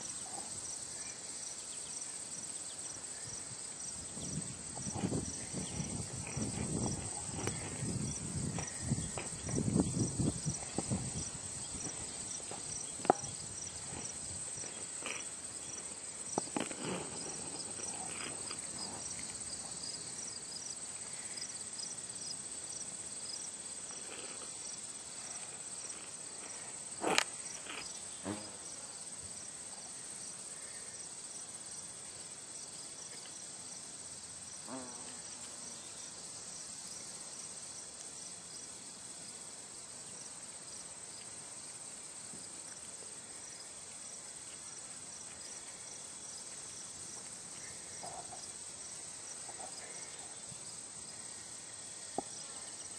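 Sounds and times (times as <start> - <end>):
insect chirping: 0.0 - 52.9.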